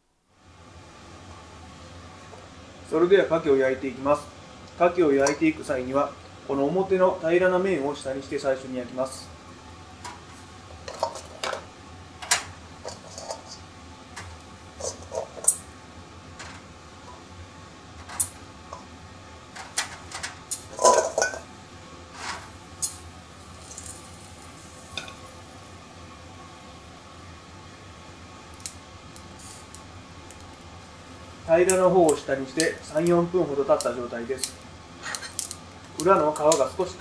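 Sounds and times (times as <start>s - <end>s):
shells clacking on metal grill: 19.5s - 21.5s, 33.8s - 36.7s.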